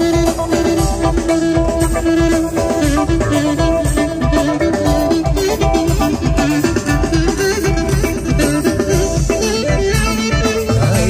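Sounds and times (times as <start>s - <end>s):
folk dance music: 0.0s - 11.0s.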